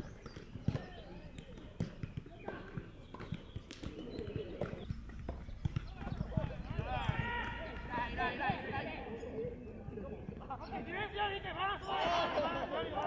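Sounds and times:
footballs kicked thuds: 0:00.1 - 0:08.8
distant players calling out: 0:05.9 - 0:13.0.

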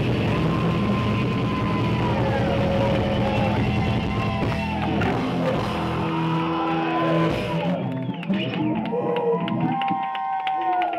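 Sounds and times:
distorted guitars and bass droning: 0:00.0 - 0:10.2.

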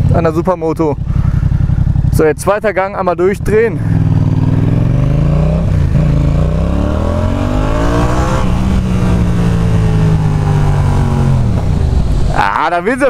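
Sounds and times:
motorcycle engine revving: 0:00.0 - 0:12.6.

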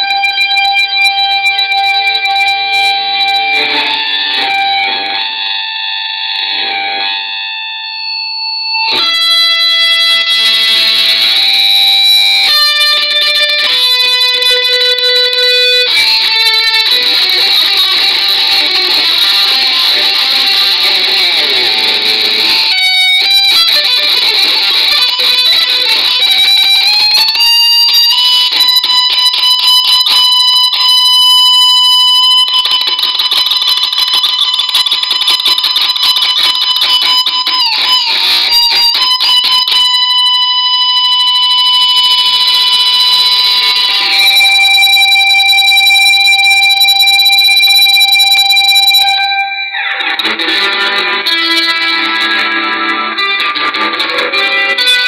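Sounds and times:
electric guitar lead bending notes: 0:00.0 - 0:55.0.

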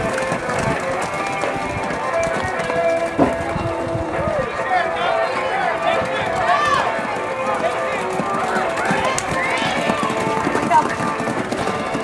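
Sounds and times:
hoofbeats of galloping ponies: 0:00.0 - 0:12.0
people shouting and cheering: 0:01.1 - 0:12.0.

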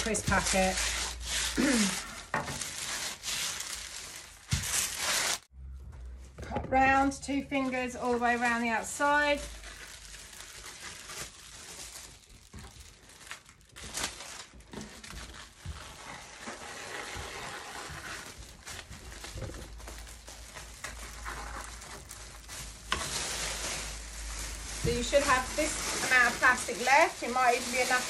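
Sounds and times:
plastic crinkling: 0:00.0 - 0:05.5, 0:07.4 - 0:28.0.

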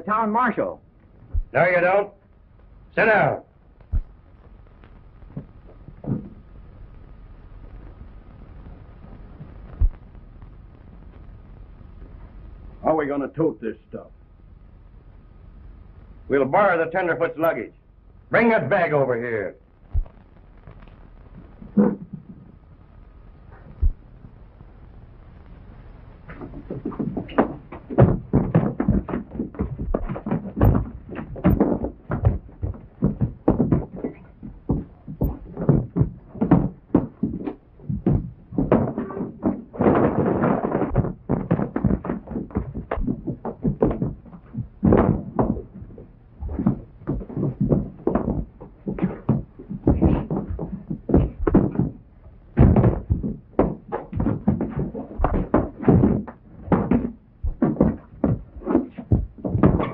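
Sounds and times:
punches and thuds: 0:03.8 - 0:04.2, 0:26.3 - 0:52.0, 0:52.6 - 0:59.9
scuffling noise: 0:26.2 - 0:59.9.

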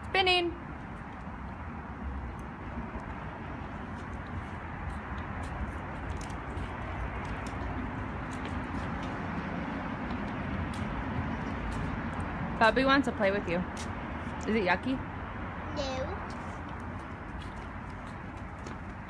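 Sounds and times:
light ticks and scuffs: 0:02.2 - 0:14.6, 0:16.2 - 0:19.0.

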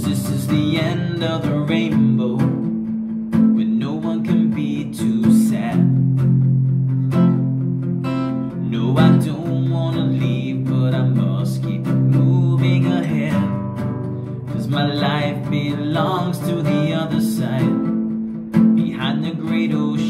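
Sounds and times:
man singing: 0:00.0 - 0:02.8, 0:03.4 - 0:06.2, 0:08.5 - 0:18.0, 0:18.6 - 0:20.0
acoustic guitar strumming chords: 0:00.0 - 0:20.0.

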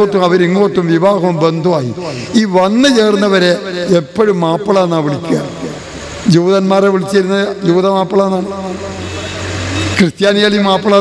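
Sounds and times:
man speaking into a microphone: 0:00.0 - 0:09.2, 0:09.9 - 0:11.0
passing motor vehicle rumbling: 0:07.6 - 0:10.2.

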